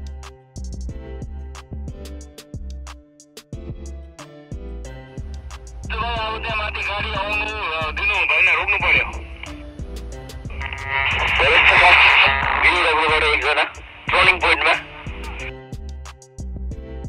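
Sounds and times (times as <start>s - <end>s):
background music: 0.0s - 17.0s
voice through walkie-talkie: 5.9s - 9.6s, 10.5s - 15.5s.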